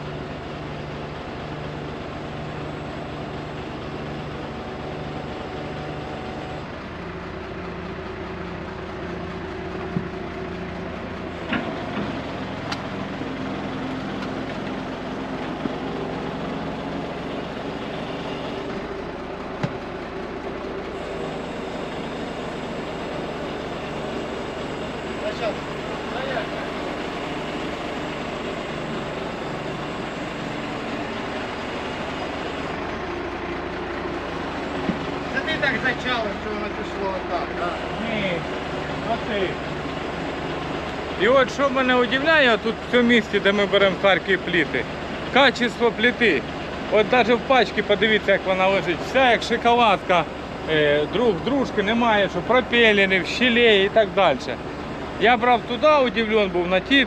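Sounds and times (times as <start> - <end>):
truck engine running: 0.0 - 57.0.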